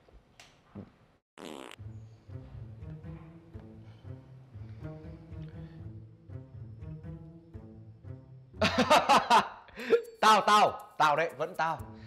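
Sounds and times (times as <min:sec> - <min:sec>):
buzzy fart: 0:00.8 - 0:01.8
comic double bass music: 0:01.8 - 0:10.7.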